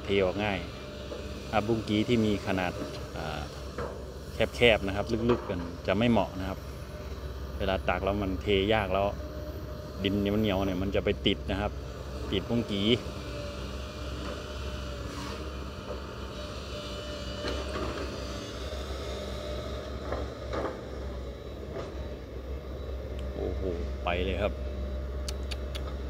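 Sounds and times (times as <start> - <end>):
excavator diesel engine droning: 0.0 - 26.0.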